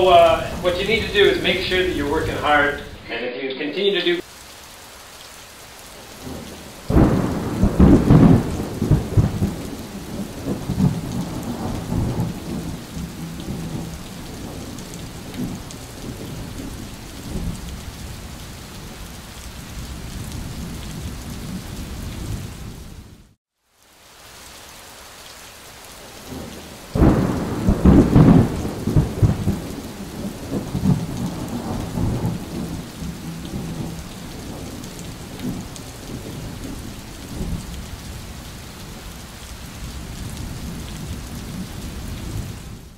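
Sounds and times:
rolling thunder: 0.0 - 3.1, 6.2 - 17.7, 26.3 - 37.7
steady rain: 0.0 - 42.9.

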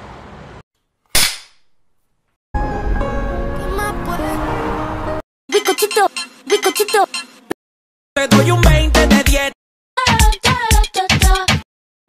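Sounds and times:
music: 2.6 - 5.2, 8.2 - 11.6.

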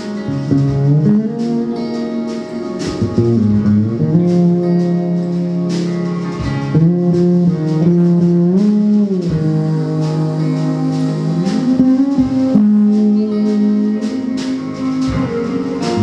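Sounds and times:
acoustic guitar playing: 0.0 - 16.0
electric guitar bending notes: 0.0 - 16.0.

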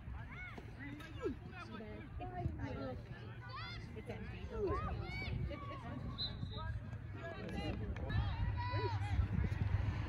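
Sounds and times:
wind rumble on microphone: 4.4 - 10.0.

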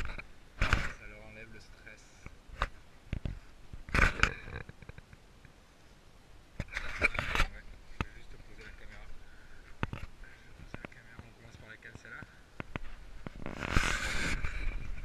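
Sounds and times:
camera handling scraping and knocking: 0.0 - 1.0, 6.6 - 9.0, 9.7 - 11.0, 12.6 - 15.0.

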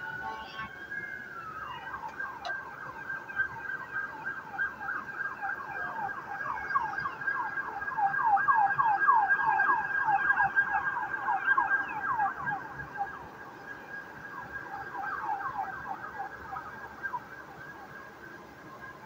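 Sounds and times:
emergency vehicle siren yelping: 0.0 - 19.0.

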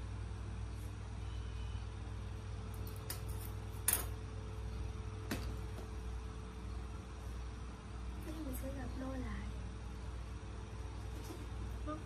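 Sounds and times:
woman speaking: 8.2 - 9.6.

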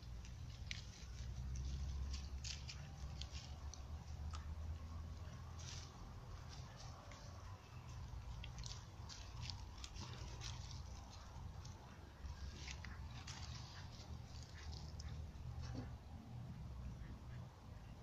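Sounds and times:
dog chewing and crunching: 0.2 - 4.6, 8.3 - 15.2.

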